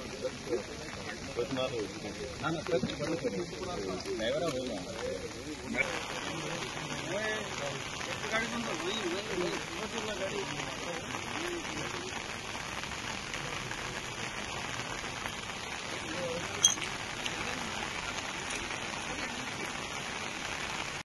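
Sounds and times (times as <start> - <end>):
heavy rain hissing: 0.0 - 21.0.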